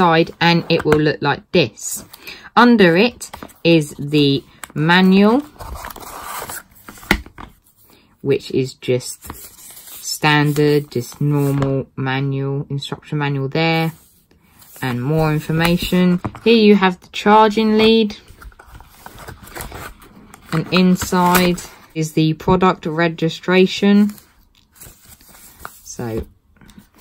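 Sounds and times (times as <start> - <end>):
paper rustling and scraping: 3.3 - 8.0, 9.0 - 11.8, 17.7 - 21.9, 23.8 - 27.0.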